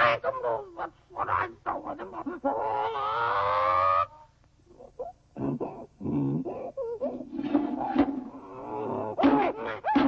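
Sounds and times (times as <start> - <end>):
cartoon animal call: 0.0 - 4.2.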